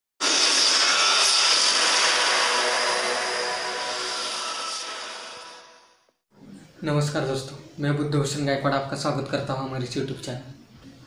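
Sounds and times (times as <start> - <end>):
loud rushing whoosh: 0.2 - 5.8.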